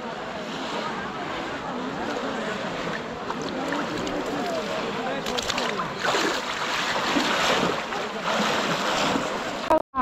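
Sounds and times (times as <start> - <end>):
water splashing and sloshing: 0.1 - 9.8.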